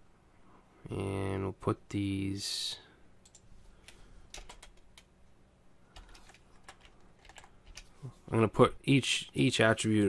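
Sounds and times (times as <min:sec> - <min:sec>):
computer keyboard typing: 0:03.2 - 0:05.1, 0:05.9 - 0:07.9.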